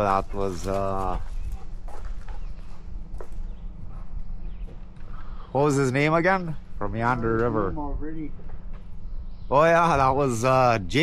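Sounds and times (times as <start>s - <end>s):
footsteps on dirt path: 0.0s - 5.6s
steady low rumble: 0.0s - 11.0s.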